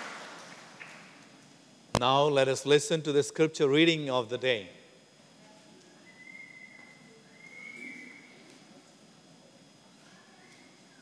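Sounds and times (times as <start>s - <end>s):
faint high whistling tone: 6.0s - 8.4s.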